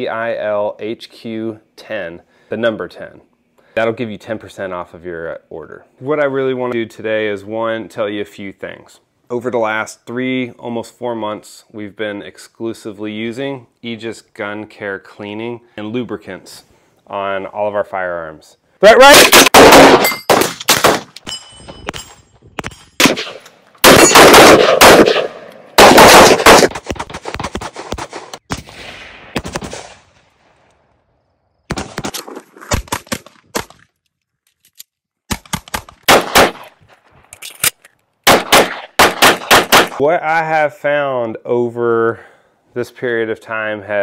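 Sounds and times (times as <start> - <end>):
gunshots in rapid strings: 19.1 - 21.1, 23.0 - 30.3, 38.3 - 40.0.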